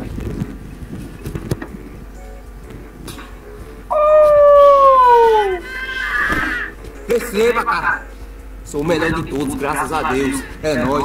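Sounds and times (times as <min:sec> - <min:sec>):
wind rumbling on microphone: 0:00.0 - 0:05.6.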